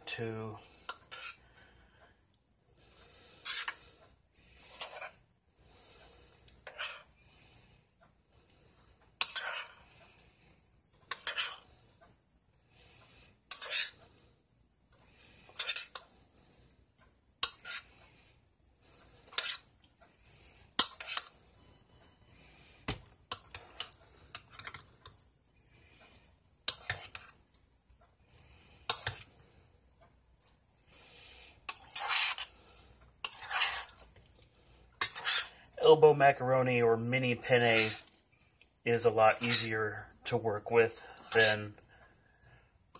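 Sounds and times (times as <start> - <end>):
spoon scraping and clinking pot: 0.8 - 1.4, 3.4 - 3.9, 4.6 - 5.2, 6.5 - 7.2, 9.2 - 10.0, 11.0 - 11.8, 13.5 - 14.0, 15.4 - 16.1, 17.4 - 18.0, 19.2 - 19.7, 20.8 - 21.4, 23.3 - 25.2, 25.9 - 27.4, 28.8 - 29.4, 31.6 - 32.6, 33.2 - 34.4, 35.0 - 36.1, 37.2 - 38.2, 39.0 - 41.9.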